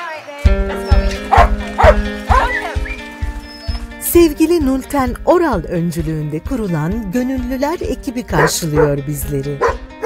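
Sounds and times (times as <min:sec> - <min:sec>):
background music with beat: 0:00.4 - 0:10.0
dog barking: 0:01.0 - 0:02.8, 0:08.4 - 0:09.0, 0:09.6 - 0:09.8.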